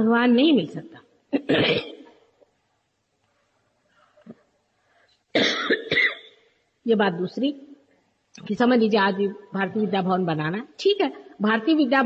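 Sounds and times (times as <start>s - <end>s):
person coughing: 1.4s - 2.2s, 5.4s - 6.4s.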